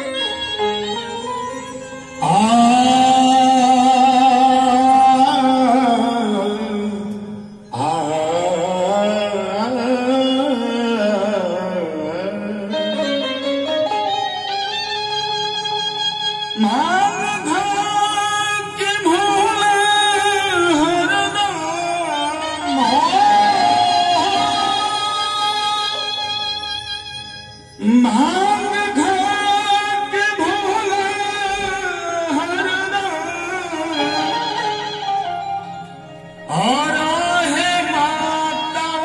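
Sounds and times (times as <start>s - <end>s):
steady held backing tone: 0.0s - 39.0s
man singing wavering vocalise: 1.7s - 13.8s, 16.6s - 35.2s, 36.2s - 39.0s.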